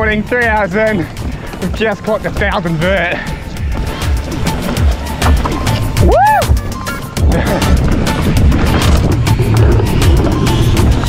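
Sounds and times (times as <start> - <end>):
background music with drum beat: 0.0 - 11.0.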